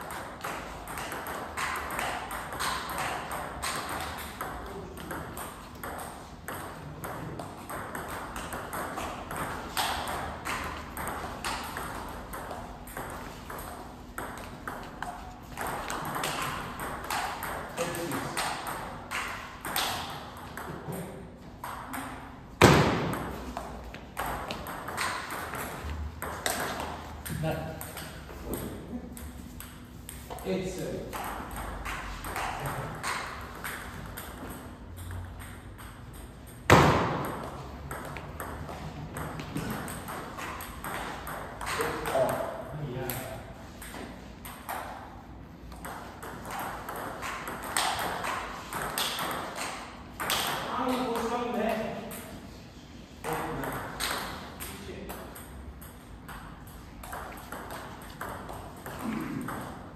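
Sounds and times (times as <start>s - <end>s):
ping pong ball hitting bats: 0.0s - 52.6s, 53.2s - 59.9s.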